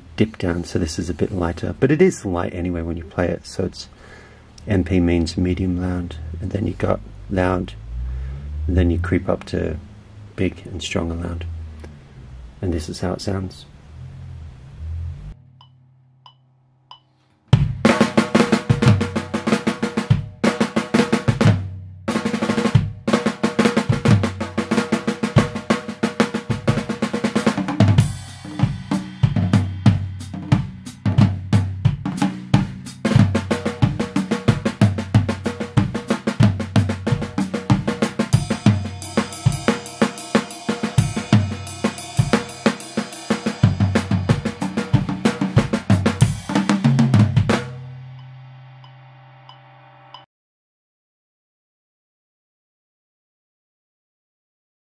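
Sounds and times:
acoustic drum kit playing: 17.5s - 49.0s
cymbal wash: 24.4s - 34.6s, 37.1s - 50.2s.

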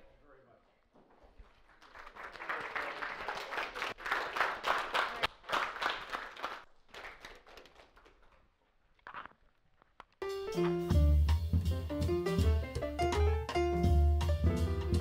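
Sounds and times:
small audience applauding: 1.4s - 8.6s.

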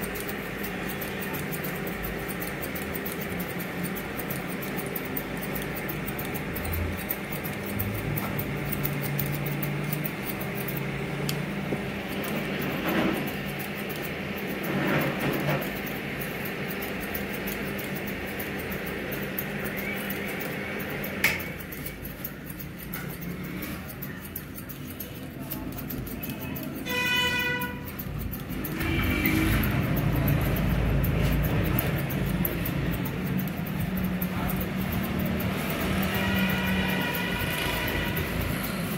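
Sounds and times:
comb working through hair: 0.0s - 38.9s
scissors cutting hair: 0.0s - 38.9s.

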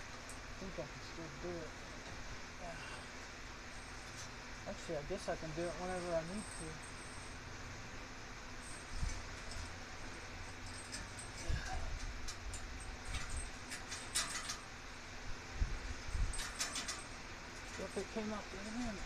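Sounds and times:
metallic clinks and rattles: 8.5s - 15.1s, 16.0s - 19.0s.

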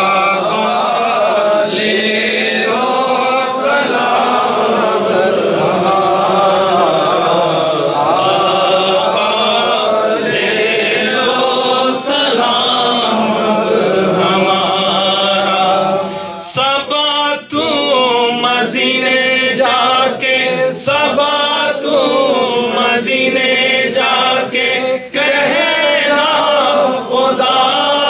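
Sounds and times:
men chanting into microphones: 0.0s - 28.0s.

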